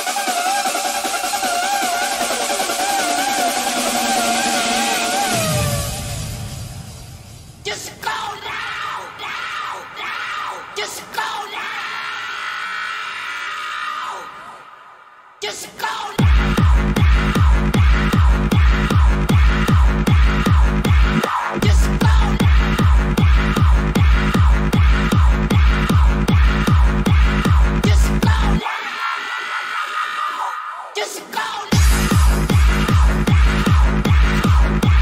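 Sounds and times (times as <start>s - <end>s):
falling synth sweeps: 0.0s - 7.5s.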